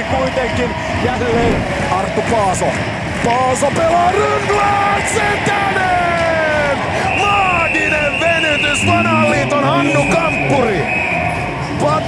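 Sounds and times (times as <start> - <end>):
arena crowd noise: 0.0 - 12.0
excited tv commentary: 3.6 - 11.0.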